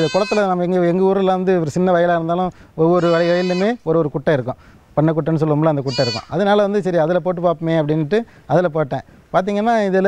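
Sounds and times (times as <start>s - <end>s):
goat bleating: 0.0s - 0.6s, 2.9s - 3.8s, 5.8s - 6.4s.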